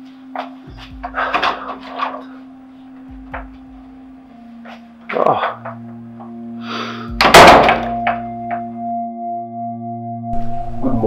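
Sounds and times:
sustained music drone: 0.0s - 11.0s.

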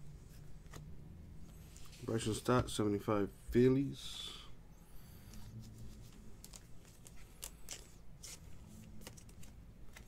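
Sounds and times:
low steady hum: 0.0s - 10.0s
cards sliding and flicking: 0.3s - 2.0s, 5.2s - 10.0s.

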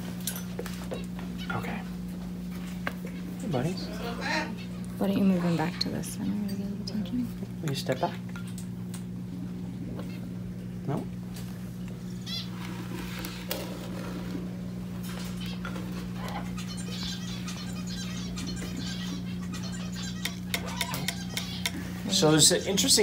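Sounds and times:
low room hum: 0.0s - 23.0s
parrot chirps and chatter: 3.0s - 7.0s, 12.0s - 13.4s, 15.0s - 22.9s.

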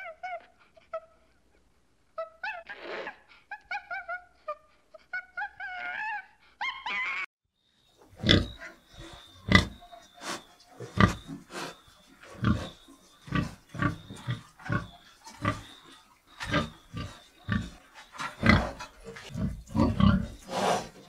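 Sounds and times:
pigs grunting: 8.1s - 21.0s
harsh pig call: 16.4s - 21.0s.

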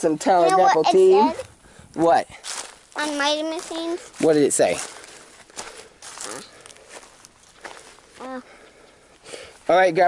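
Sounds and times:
footsteps on ground: 1.4s - 9.7s.

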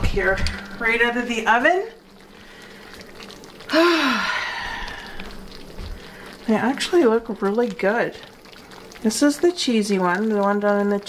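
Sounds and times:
woman sighing: 3.7s - 5.3s.

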